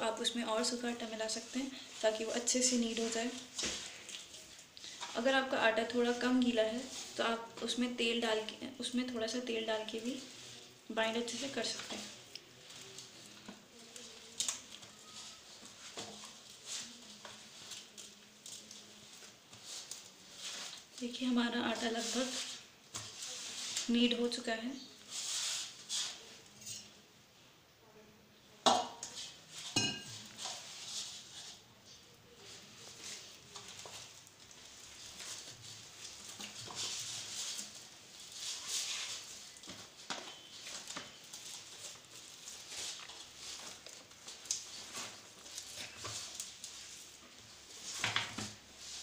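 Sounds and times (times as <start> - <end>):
hands kneading dough: 0.2 - 24.4, 29.1 - 49.0.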